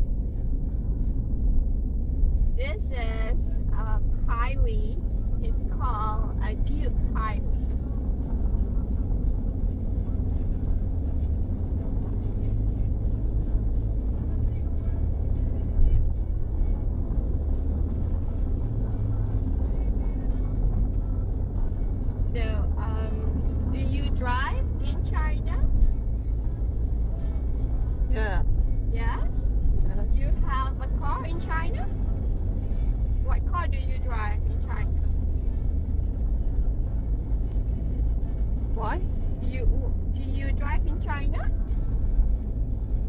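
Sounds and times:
car cabin road and engine rumble: 0:00.0 - 0:43.0.

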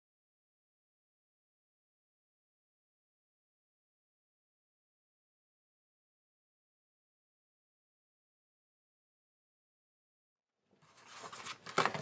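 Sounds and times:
paper rustling: 0:10.8 - 0:12.0.

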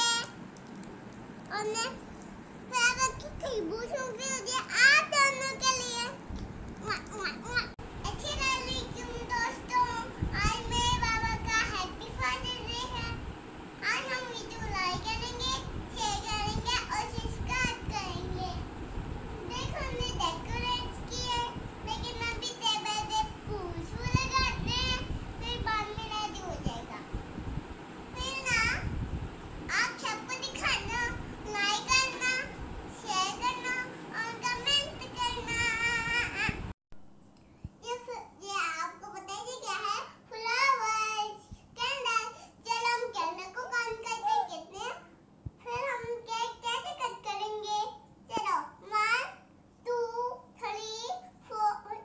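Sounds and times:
young girl talking: 0:00.0 - 0:00.4, 0:01.5 - 0:02.1, 0:02.7 - 0:06.2, 0:06.8 - 0:18.7, 0:19.3 - 0:27.2, 0:28.1 - 0:29.0, 0:29.7 - 0:36.7, 0:37.8 - 0:52.0.

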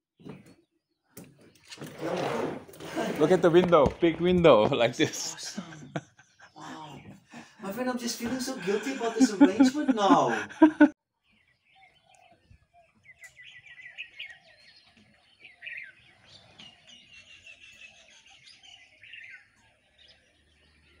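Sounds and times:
high bird chirps and trills: 0:11.2 - 0:21.0.

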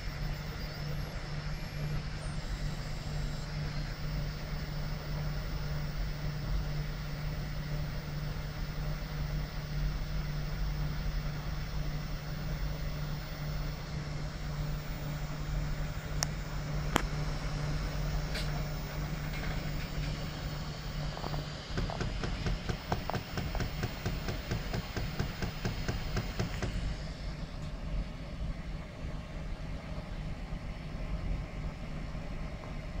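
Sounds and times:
printer motors and fans humming: 0:00.0 - 0:33.0.

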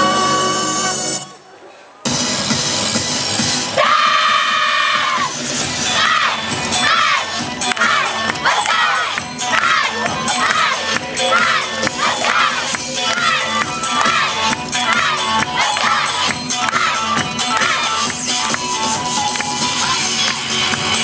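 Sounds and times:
dance music: 0:02.0 - 0:21.0.

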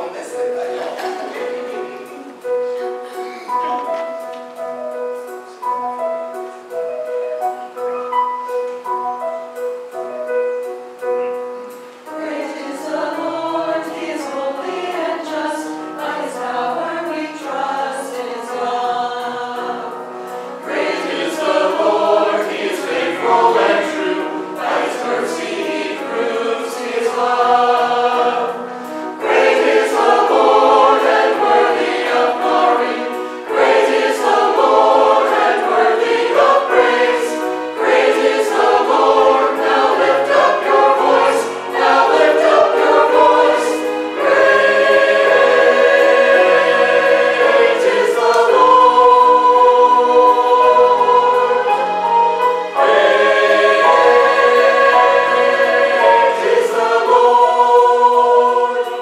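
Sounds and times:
choir singing in harmony: 0:00.0 - 0:59.0.

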